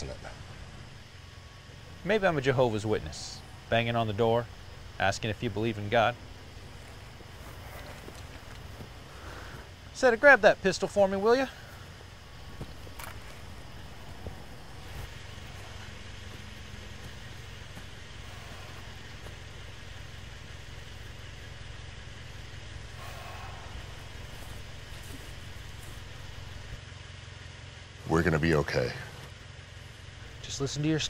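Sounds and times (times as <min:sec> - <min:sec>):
truck engine idling: 0:00.0 - 0:31.0.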